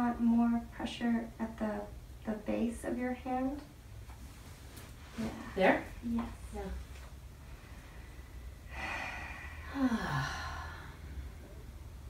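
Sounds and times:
woman sighing: 8.7s - 11.0s.

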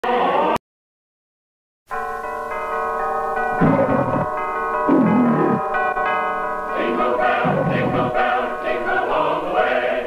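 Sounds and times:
choir singing a carol: 6.4s - 10.0s.

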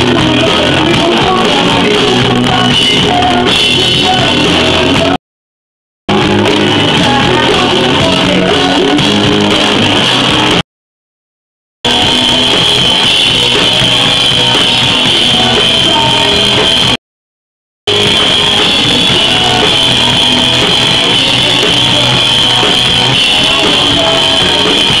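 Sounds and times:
live rock band playing: 0.0s - 5.2s, 6.1s - 10.6s, 11.9s - 17.0s, 17.9s - 25.0s.

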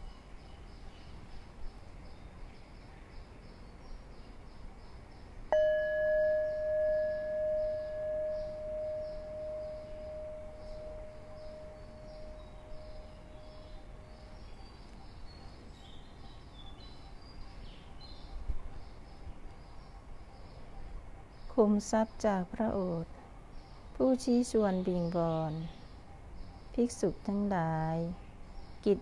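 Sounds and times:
night insects chirping: 0.1s - 15.4s
meditation bell ringing: 5.5s - 14.3s.

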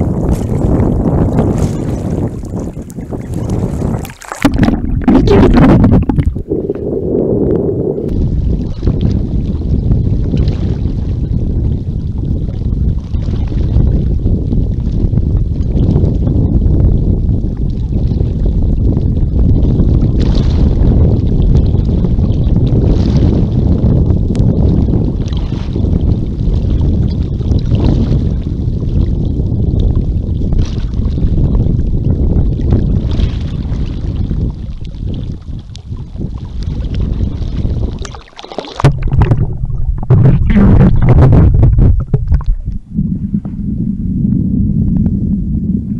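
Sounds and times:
water splashing and sloshing: 0.0s - 7.0s, 33.0s - 43.6s
wind rumble on microphone: 0.0s - 45.9s.

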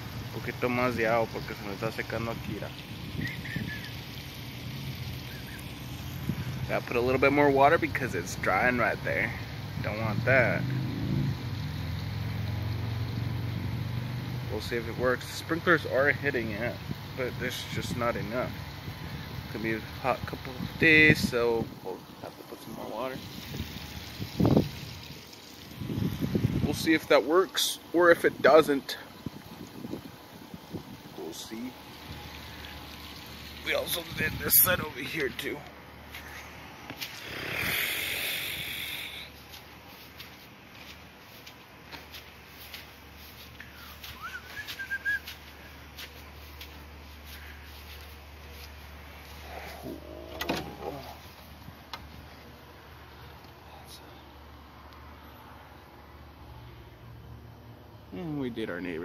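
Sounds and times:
bird chirp: 3.2s - 4.0s
wind on phone microphone: 23.2s - 25.0s, 25.8s - 26.8s, 29.2s - 31.1s
man speaking: 33.7s - 35.7s
burst of hiss: 37.0s - 39.4s
short low bird call: 43.7s - 45.3s.

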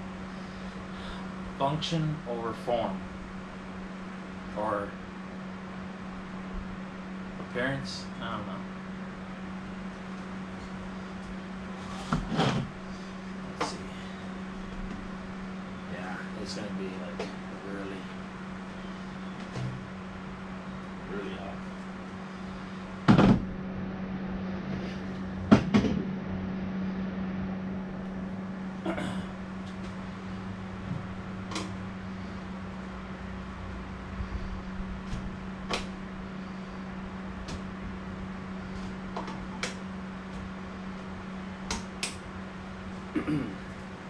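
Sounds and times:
low room hum: 0.0s - 44.0s.

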